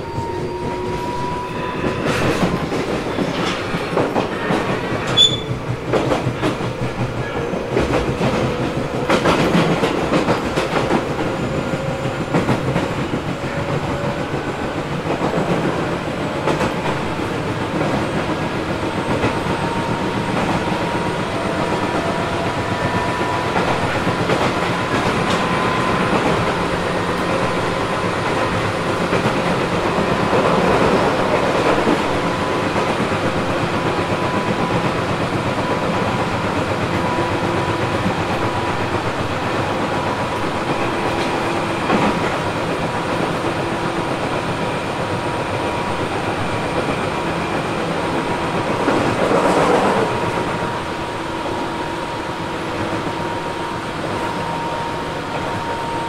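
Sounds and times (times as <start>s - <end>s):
rail-joint clickety-clack: 0.0s - 56.0s
train rumble: 0.0s - 56.0s.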